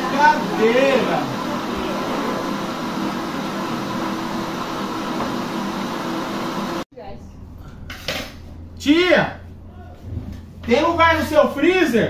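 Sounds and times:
blender running: 0.0 - 6.8.

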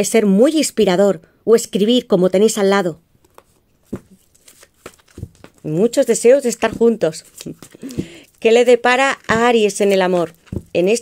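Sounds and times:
cards clicking and tapping: 3.2 - 5.6, 6.5 - 8.3, 9.0 - 11.0.

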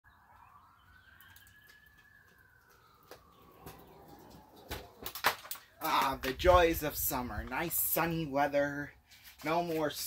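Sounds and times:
faint rising and sinking tone: 2.4 - 5.0.

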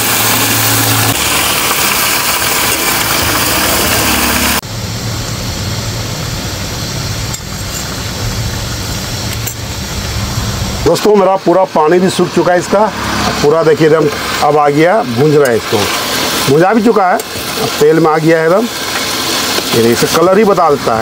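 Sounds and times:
low rumble: 0.0 - 10.9
chicken sizzling in hot oil: 0.0 - 11.3, 12.1 - 21.0.

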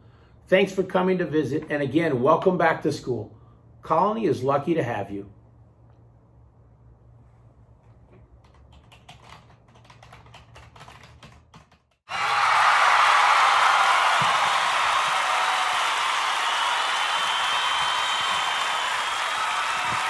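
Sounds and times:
crowd applause and cheering: 12.1 - 20.0.

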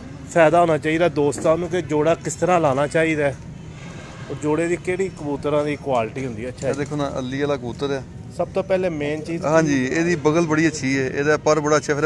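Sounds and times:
men talking: 0.2 - 3.5, 4.2 - 12.0.

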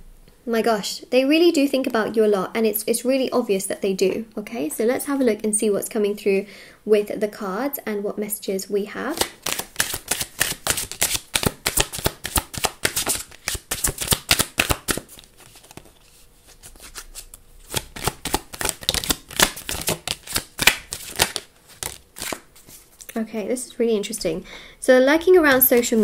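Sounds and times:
deck of cards shuffling: 9.1 - 23.1.

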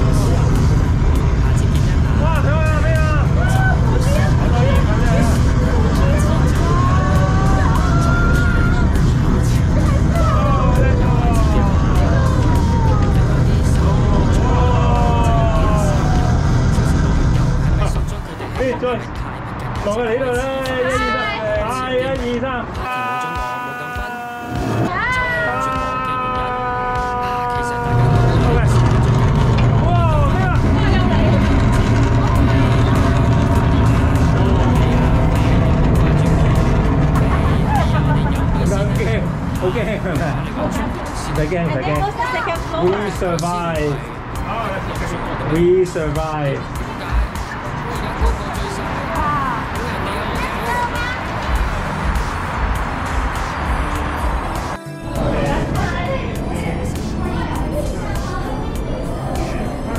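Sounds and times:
rocket engine rumble from speakers: 0.0 - 19.8, 27.4 - 54.5.

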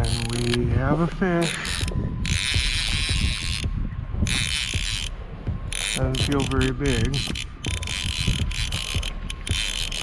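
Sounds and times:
fishing reel gears whirring: 0.0 - 10.0.

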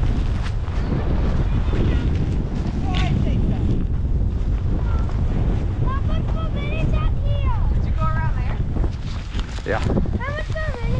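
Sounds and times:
snow spray and wind rumble: 0.0 - 10.9.

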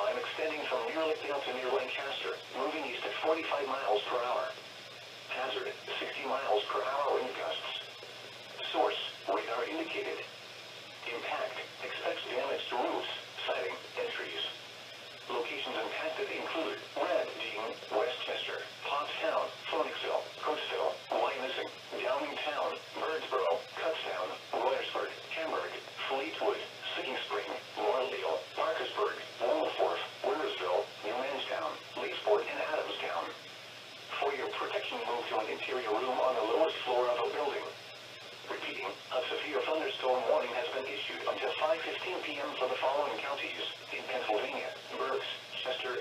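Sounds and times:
automated voice over small speaker: 0.0 - 4.6, 5.3 - 8.0, 8.6 - 10.3, 11.0 - 14.6, 15.2 - 33.4, 34.1 - 37.8, 38.4 - 46.0.

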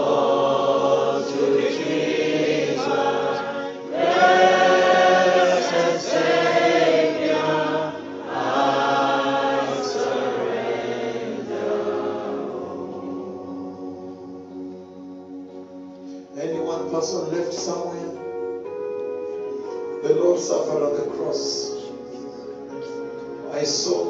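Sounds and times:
choir singing: 0.0 - 15.2.

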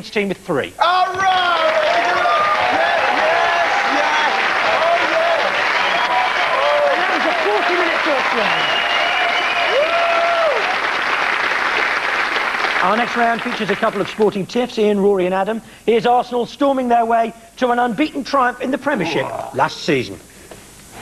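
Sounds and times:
audience applauding: 1.2 - 14.2
voices calling out: 18.8 - 19.7.

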